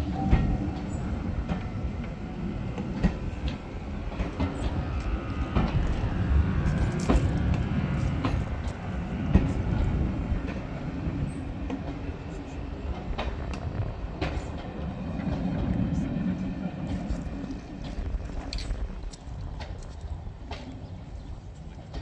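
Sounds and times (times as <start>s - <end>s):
train coaches rumbling past: 0.0s - 22.0s
wheels clicking over rail joints: 0.0s - 22.0s.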